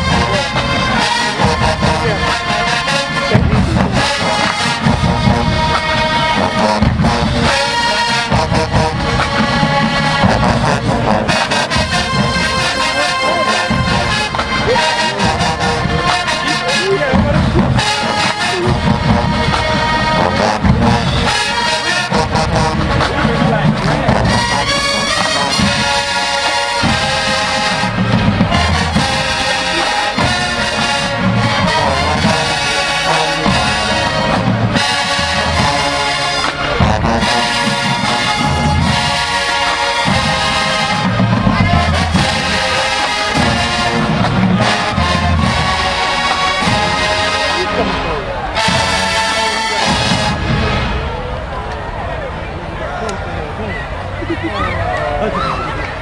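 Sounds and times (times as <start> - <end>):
drums striking: 0.0 - 47.9
tuba bass line: 0.0 - 51.6
marching band playing loudly: 0.0 - 52.5.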